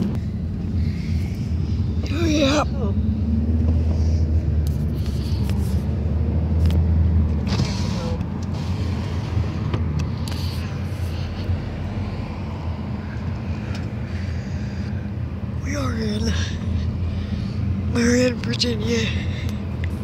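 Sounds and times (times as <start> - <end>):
car engine and road drone: 0.0 - 20.0.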